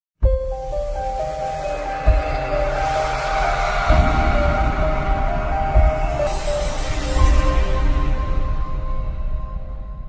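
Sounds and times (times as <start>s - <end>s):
dramatic music sustained tones: 0.3s - 10.0s
whoosh: 1.2s - 8.3s
deep hit: 1.9s - 7.9s.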